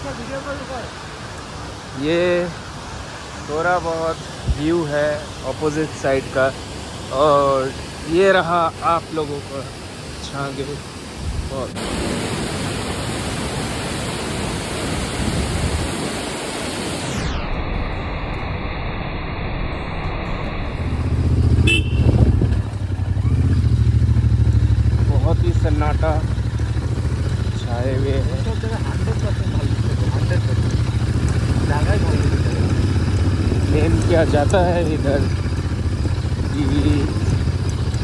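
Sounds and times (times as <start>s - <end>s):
waterfall rushing: 0.0s - 17.2s
motorcycle engine running: 20.2s - 38.0s.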